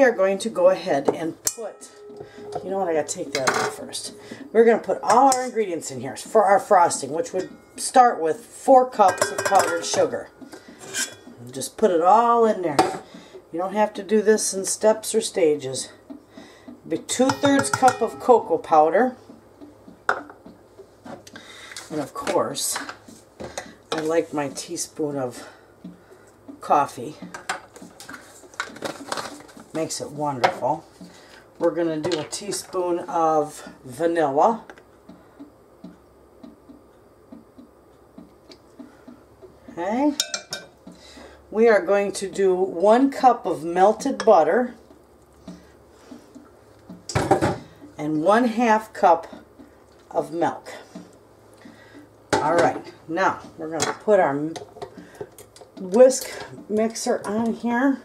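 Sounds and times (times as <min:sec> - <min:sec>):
kitchen containers clattering: 0:09.0 - 0:10.2, 0:17.2 - 0:18.5, 0:27.4 - 0:29.6.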